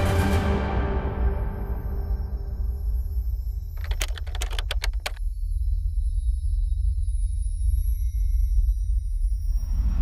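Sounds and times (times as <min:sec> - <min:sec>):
typing-like clicks: 0:03.8 - 0:05.2.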